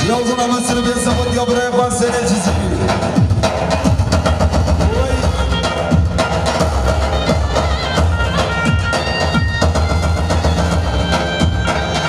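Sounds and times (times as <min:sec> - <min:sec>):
live folk dance music: 0:00.0 - 0:12.0.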